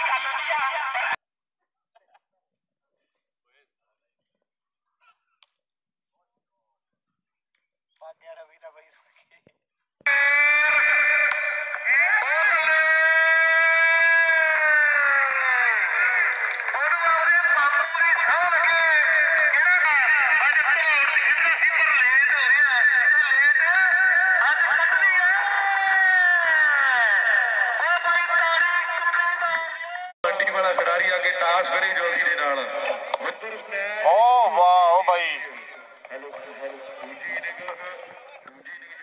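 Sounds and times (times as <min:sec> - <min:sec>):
voices cheering and whooping: 0:10.1 - 0:29.5.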